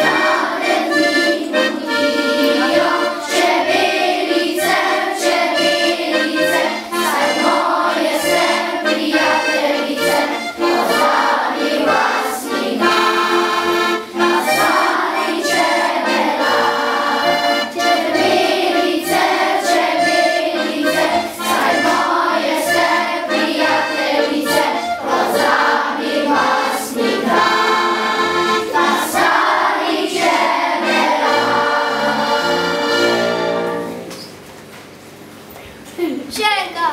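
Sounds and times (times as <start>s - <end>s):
children's choir singing: 0.0s - 34.2s
button accordion: 0.0s - 34.3s.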